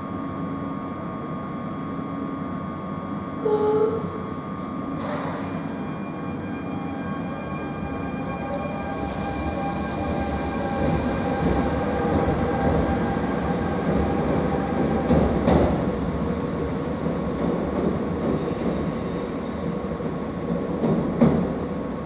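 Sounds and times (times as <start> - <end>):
train wheels rumbling on rail: 8.5 - 22.0
high hiss: 8.7 - 11.7.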